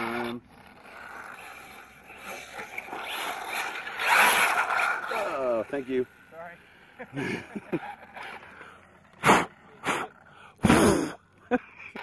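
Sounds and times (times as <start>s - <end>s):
person sneezing loudly: 10.6s - 11.2s.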